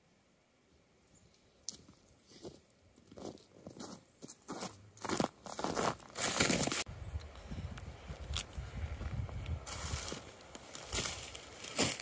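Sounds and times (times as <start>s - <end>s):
crunching rustle: 1.7s - 6.9s, 8.2s - 12.0s
footsteps crunching through snow: 2.2s - 6.9s, 8.3s - 12.0s.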